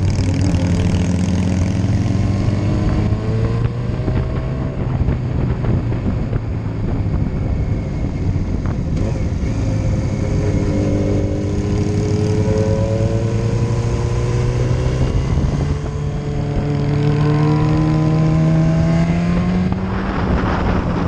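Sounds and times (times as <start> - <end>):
motorcycle engine running: 0.0 - 21.0
wind noise rush: 0.0 - 21.0.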